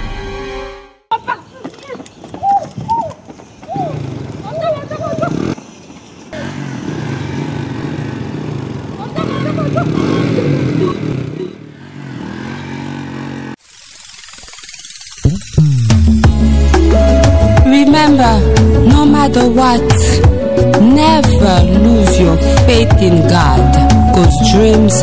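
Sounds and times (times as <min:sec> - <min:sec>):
people calling out: 0:01.1 - 0:05.6, 0:08.9 - 0:11.7
small motorcycle engine running: 0:03.6 - 0:16.6.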